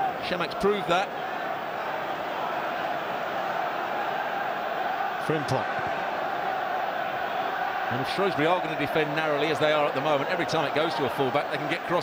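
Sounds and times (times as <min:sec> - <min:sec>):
stadium crowd voices: 0:00.0 - 0:12.0.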